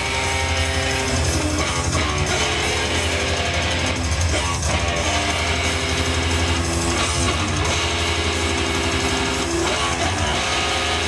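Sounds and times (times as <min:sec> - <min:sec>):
distorted electric guitar: 0:00.0 - 0:11.0
steady low bass: 0:00.0 - 0:11.0.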